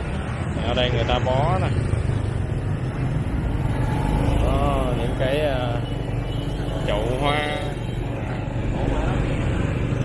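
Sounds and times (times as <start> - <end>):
scooter engines rumbling: 0.0 - 10.0
street traffic: 0.0 - 10.0.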